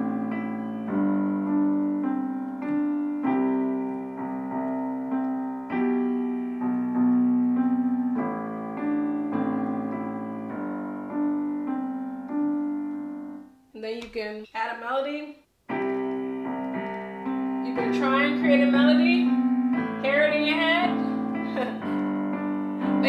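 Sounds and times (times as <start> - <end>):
digital piano played with both hands: 0.0 - 13.7, 15.7 - 23.0.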